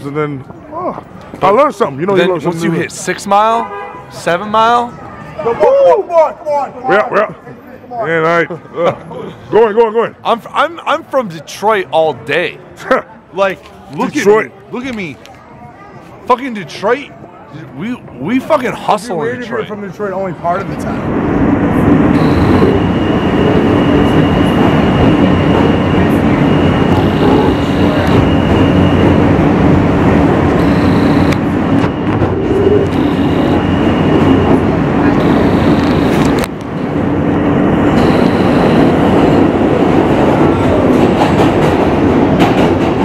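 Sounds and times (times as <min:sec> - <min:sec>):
subway train rumble and rattle: 0:20.6 - 0:43.0
high whine: 0:21.8 - 0:40.8.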